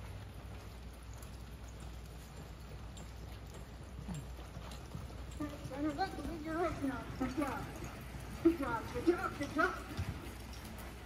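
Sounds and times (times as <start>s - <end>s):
horse hooves clip-clopping on dirt: 0.0s - 11.0s.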